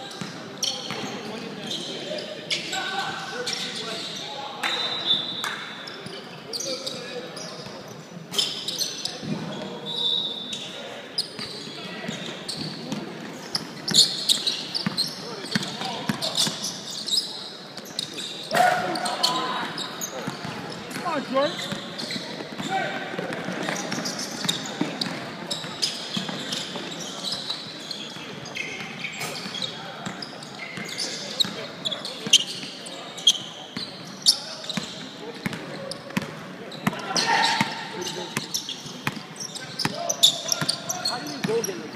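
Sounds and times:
players' voices: 0:00.0 - 0:41.9
sneakers squeaking: 0:00.0 - 0:41.9.

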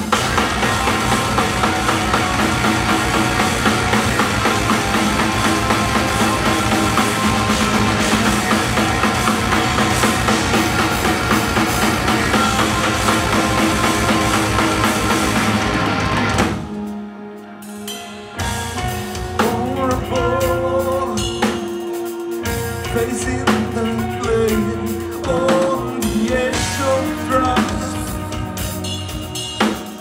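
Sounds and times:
bass guitar: 0:00.0 - 0:30.0
drum kit beat: 0:00.0 - 0:30.0
electric guitars: 0:00.0 - 0:30.0.

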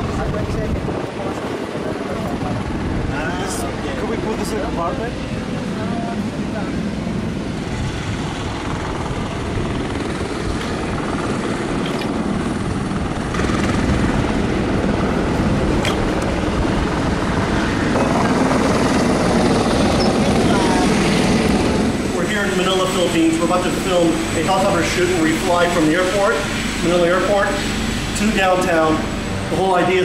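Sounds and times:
helicopter turbine noise: 0:00.0 - 0:30.0.

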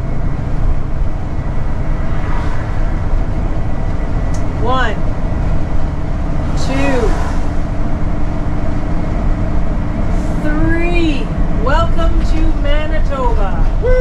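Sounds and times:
vehicle engine and road drone: 0:00.0 - 0:14.0
whooping cheers: 0:13.8 - 0:14.0.

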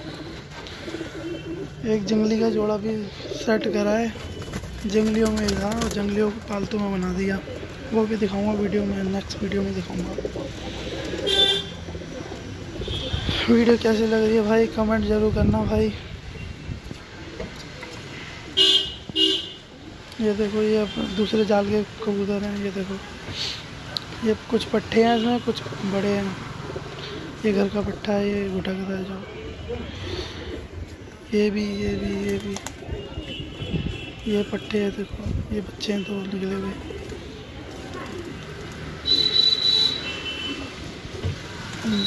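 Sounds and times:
pigeons cooing: 0:00.0 - 0:14.8, 0:26.4 - 0:28.5, 0:29.1 - 0:34.2, 0:36.5 - 0:42.0
vehicle horn honk: 0:11.3 - 0:11.8, 0:18.6 - 0:19.6, 0:39.1 - 0:40.6.

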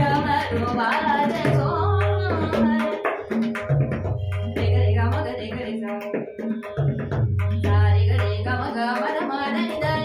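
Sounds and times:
woman singing: 0:00.0 - 0:03.4, 0:04.6 - 0:06.4, 0:07.5 - 0:10.0
tabla playing: 0:00.0 - 0:10.0.

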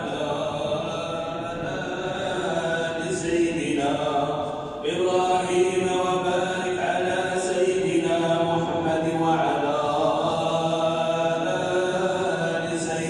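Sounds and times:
person chanting: 0:00.0 - 0:13.0.

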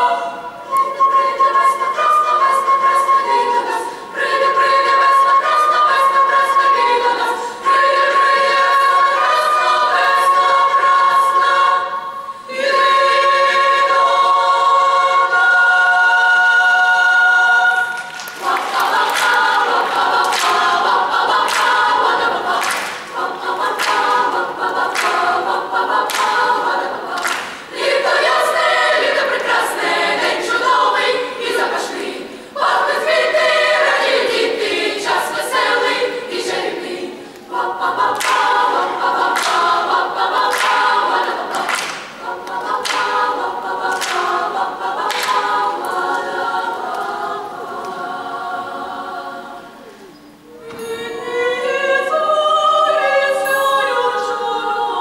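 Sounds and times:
youth choir singing unaccompanied: 0:00.0 - 0:55.0.

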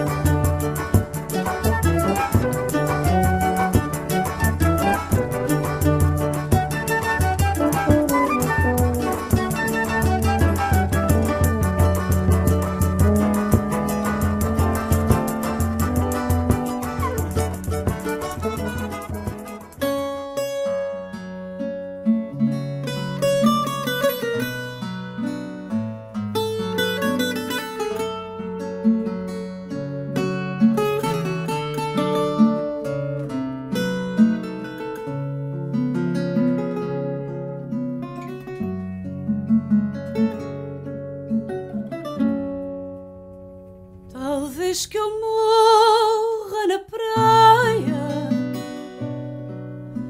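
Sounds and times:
acoustic guitar music: 0:00.0 - 0:50.0.

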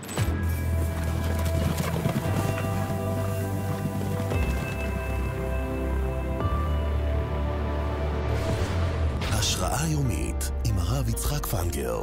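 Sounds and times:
galloping horses hoofbeats: 0:00.0 - 0:06.4.

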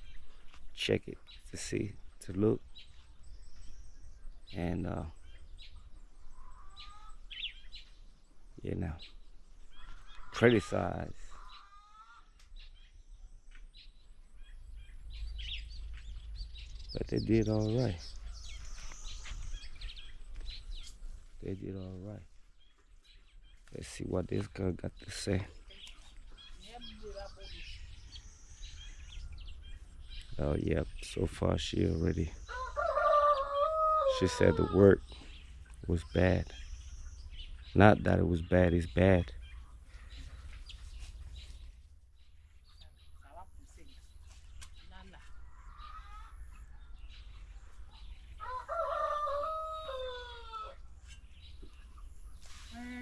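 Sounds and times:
faint bird chirps: 0:00.0 - 0:53.0
steady low rumble: 0:13.0 - 0:21.5
rooster crowing: 0:32.5 - 0:34.8, 0:48.4 - 0:50.8.

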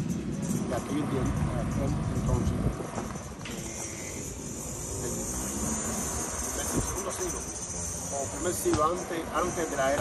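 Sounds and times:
high-pitched insect drone: 0:00.4 - 0:10.0.

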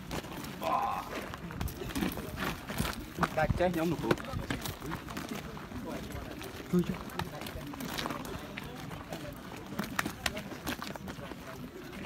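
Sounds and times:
men's voices outdoors: 0:00.0 - 0:12.0.

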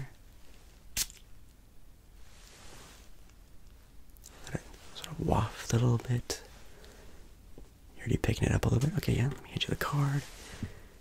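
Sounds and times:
soft spray hiss: 0:02.1 - 0:11.0.

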